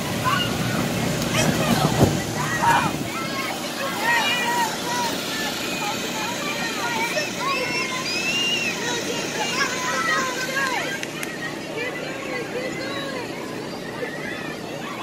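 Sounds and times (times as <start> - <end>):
air blower droning: 0.0 - 15.0
children calling and shouting: 0.0 - 15.0.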